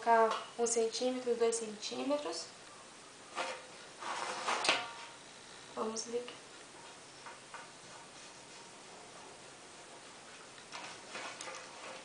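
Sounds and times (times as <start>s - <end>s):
paper and ruler rustling: 3.4s - 4.8s, 10.2s - 12.0s.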